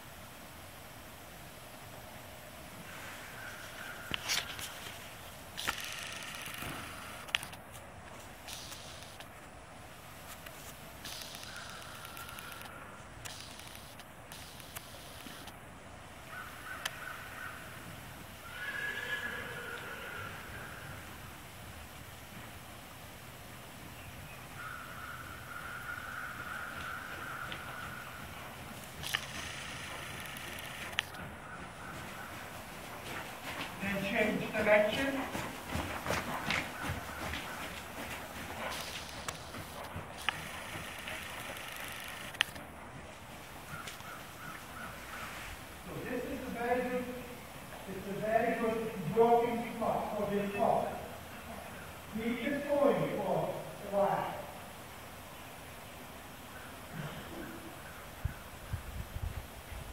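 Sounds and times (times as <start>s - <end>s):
steady background hiss: 0.0s - 59.9s
sharp ticks: 5.6s - 7.6s, 8.5s - 9.3s, 10.4s - 15.6s, 28.8s - 31.2s, 38.6s - 42.6s
muffled horse hoofbeats: 5.7s - 7.3s, 26.4s - 45.0s
horse whinnying: 18.4s - 21.2s.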